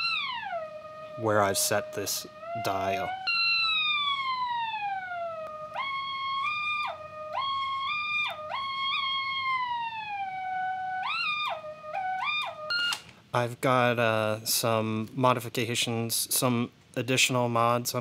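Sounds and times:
warbly tape test tone: 0:00.0 - 0:13.0.

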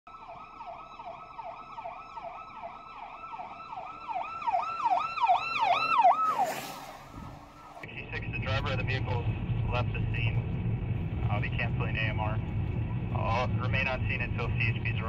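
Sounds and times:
police siren yelp: 0:00.1 - 0:07.9.

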